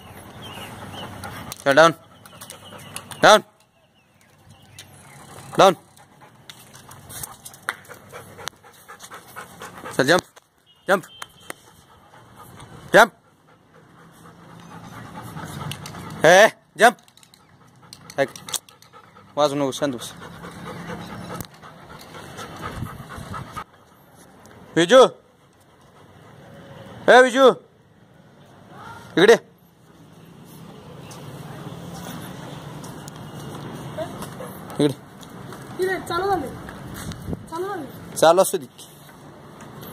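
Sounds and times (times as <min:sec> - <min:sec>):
dog panting: 0:00.0 - 0:03.2, 0:05.0 - 0:10.4, 0:11.5 - 0:16.3, 0:17.3 - 0:26.8, 0:33.8 - 0:35.4.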